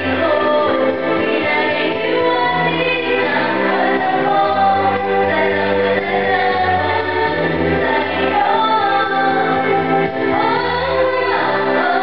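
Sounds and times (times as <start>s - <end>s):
held bass notes: 0.0s - 12.0s
instrumental accompaniment: 0.0s - 12.0s
woman singing into a microphone: 0.0s - 12.0s.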